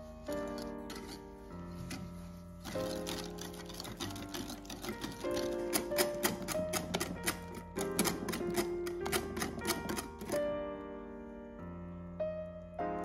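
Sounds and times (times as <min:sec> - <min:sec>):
piano music: 0:00.0 - 0:13.0
whisk clicking against glass bowl: 0:02.6 - 0:10.4.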